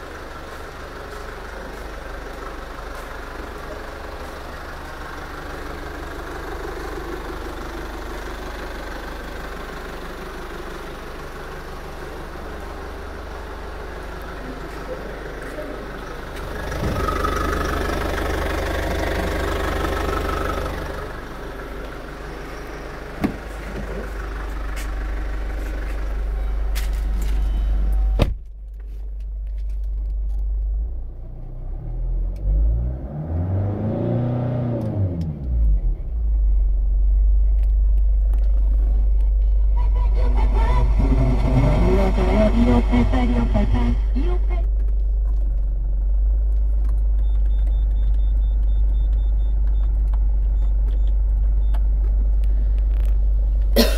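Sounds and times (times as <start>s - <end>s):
car engine idling: 0.0s - 33.0s, 34.5s - 53.9s
car engine revving: 11.2s - 28.2s, 30.7s - 53.9s
car door shutting: 16.8s - 17.3s, 23.2s - 24.1s, 26.8s - 28.6s.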